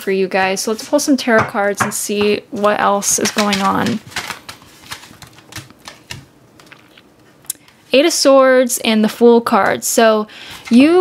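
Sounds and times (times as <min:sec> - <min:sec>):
cards clicking and tapping: 0:03.1 - 0:07.8.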